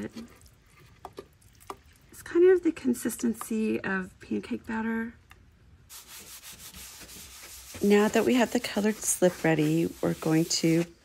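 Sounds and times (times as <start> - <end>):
damp sponge wiping: 5.9 - 11.0.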